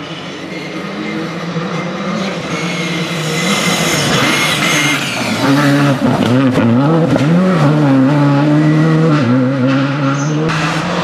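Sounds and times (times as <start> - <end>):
rally car engine running hard: 0.0 - 11.0.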